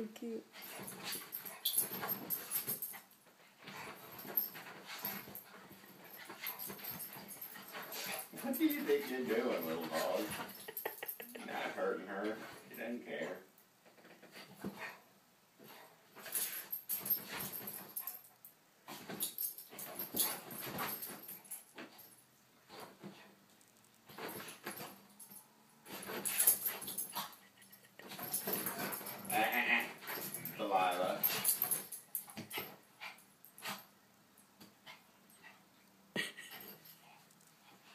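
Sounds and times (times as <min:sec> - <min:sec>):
dogs play-fighting: 0:00.4 - 0:37.9.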